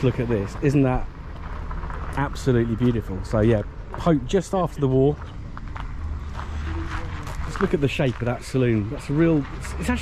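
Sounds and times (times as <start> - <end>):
low outdoor rumble: 0.0 - 10.0
footsteps on gravel: 3.8 - 10.0.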